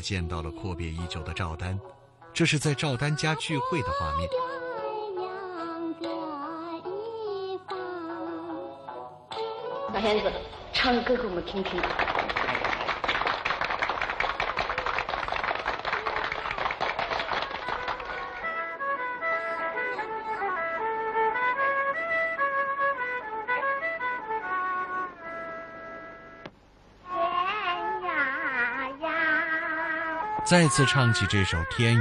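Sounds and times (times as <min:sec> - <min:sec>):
slow instrumental melody: 0:18.2 - 0:26.6.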